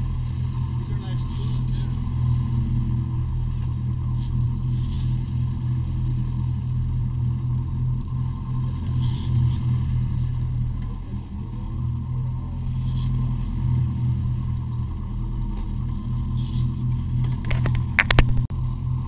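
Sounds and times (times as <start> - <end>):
boat engines droning: 0.0 - 19.0.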